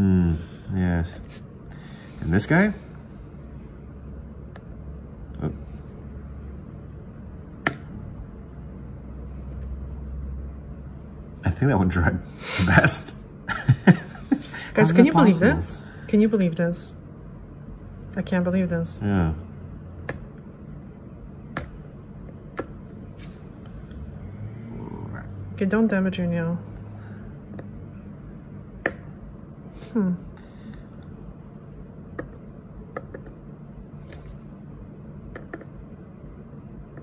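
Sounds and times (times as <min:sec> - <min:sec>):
low background hum: 0:00.0 - 0:37.0
wooden stick tapping fingernail: 0:32.1 - 0:33.4.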